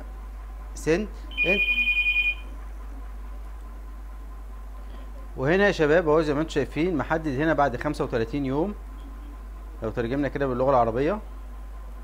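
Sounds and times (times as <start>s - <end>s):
two-tone electronic ring: 1.3s - 2.5s.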